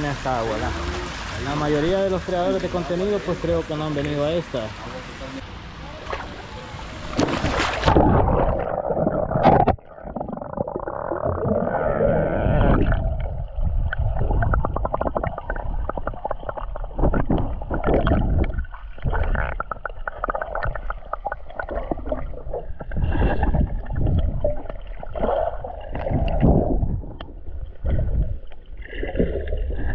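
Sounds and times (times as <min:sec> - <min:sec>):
underwater gurgling: 0:05.8 - 0:29.9.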